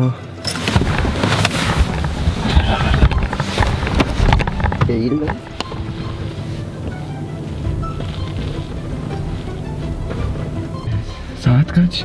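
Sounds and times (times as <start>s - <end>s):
background music with held tones: 0.0s - 12.0s
people shifting in a car: 0.5s - 11.3s.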